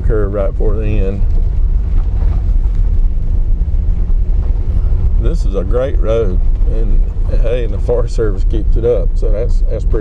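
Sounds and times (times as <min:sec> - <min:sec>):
car engine and tyres on dirt road: 0:00.0 - 0:10.0.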